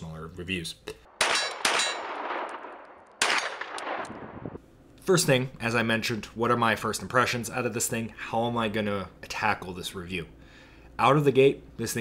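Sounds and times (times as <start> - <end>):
pistol gunshot with echo: 1.1 - 4.2.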